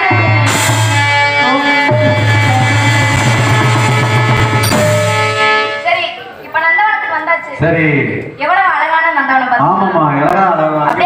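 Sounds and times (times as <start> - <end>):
tabla and drum beats: 0.0 - 5.9
harmonium chords: 0.0 - 6.4
sharp cymbal-like hit: 4.6 - 5.8.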